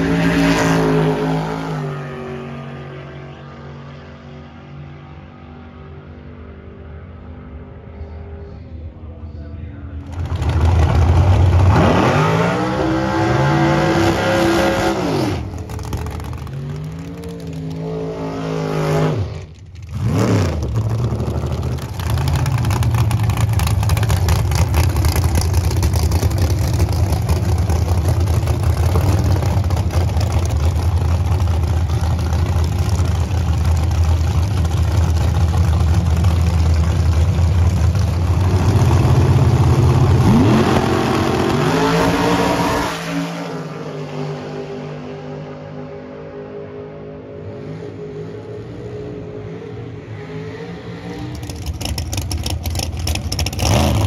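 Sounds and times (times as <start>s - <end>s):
drag car engine revving: 10.0s - 45.0s, 47.9s - 54.0s.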